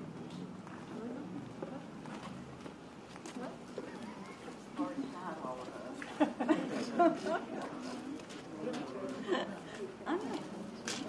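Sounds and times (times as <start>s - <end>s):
people talking: 3.3s - 11.0s.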